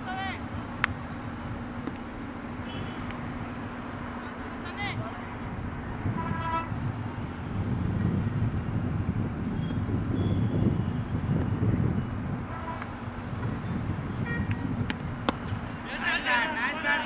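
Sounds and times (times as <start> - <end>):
low outdoor rumble: 0.0 - 17.0
short horn-like tone: 6.1 - 6.7, 12.5 - 12.8.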